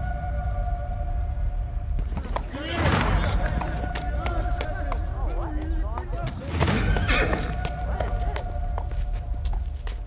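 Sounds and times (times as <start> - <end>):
indistinct players' voices: 0.0 - 10.0
low rumble: 0.0 - 10.0
running footsteps: 1.9 - 10.0.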